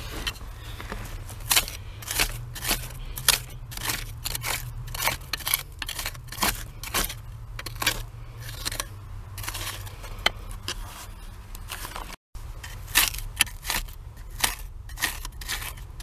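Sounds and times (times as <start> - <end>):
metal tool scraping packed dirt: 0.0 - 16.0.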